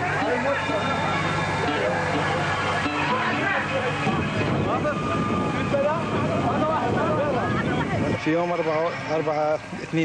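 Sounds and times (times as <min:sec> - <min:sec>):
crowd of men talking: 0:00.0 - 0:10.0
steady outdoor rumble: 0:00.0 - 0:10.0.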